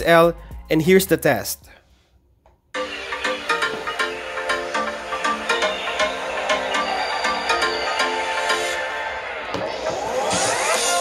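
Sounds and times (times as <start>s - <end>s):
electronic beat music from phone speaker: 2.8s - 11.0s.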